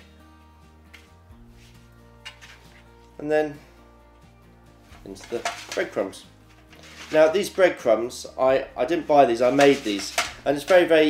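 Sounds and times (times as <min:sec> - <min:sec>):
soft background music: 0:00.0 - 0:11.0.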